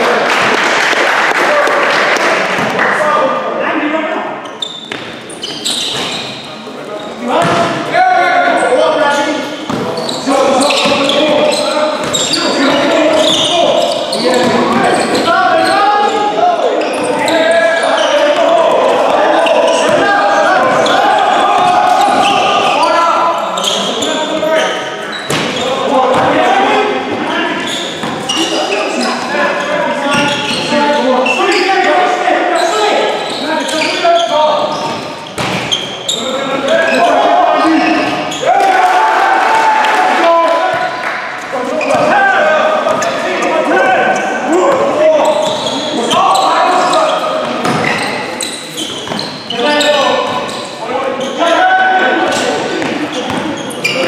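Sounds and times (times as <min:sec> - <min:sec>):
basketball bouncing on wooden court: 0:04.9 - 0:05.2, 0:07.4 - 0:07.8, 0:10.7 - 0:13.5, 0:52.8 - 0:53.5
people calling out: 0:10.0 - 0:24.8, 0:36.1 - 0:41.0, 0:41.6 - 0:50.2.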